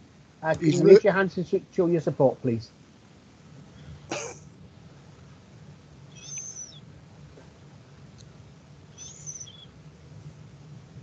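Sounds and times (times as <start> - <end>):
faint steady hum: 0.0 - 11.0
high bird-like chirps: 6.1 - 6.8, 9.0 - 9.7.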